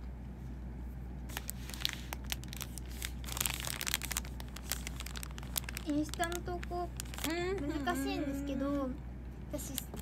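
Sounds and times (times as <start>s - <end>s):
snack packaging crinkling: 1.3s - 8.0s.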